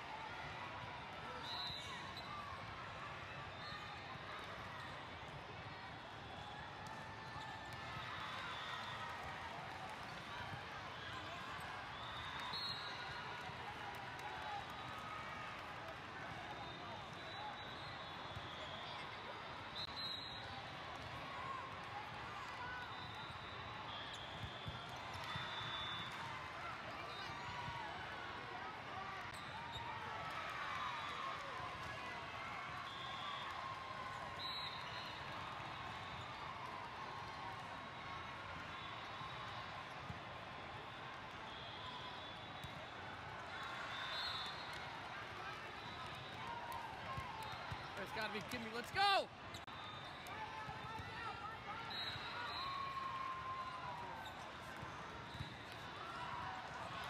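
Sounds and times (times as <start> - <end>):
hubbub of many voices: 0.0 - 57.0.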